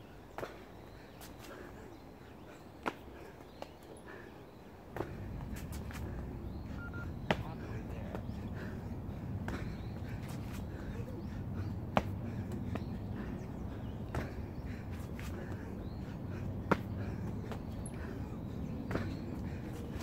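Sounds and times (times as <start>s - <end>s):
hands and feet slapping pavement: 0.0s - 20.0s
low rushing background noise: 0.0s - 20.0s
person breathing hard: 0.9s - 6.5s, 7.6s - 20.0s.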